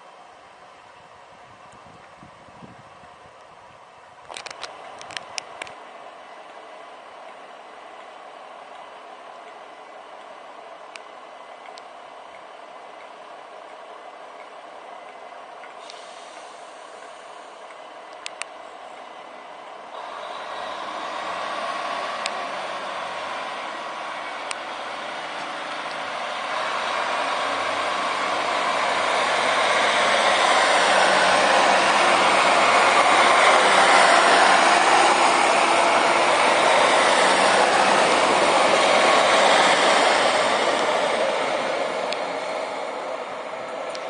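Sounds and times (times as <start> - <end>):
diesel train pulling away: 0.0 - 44.0.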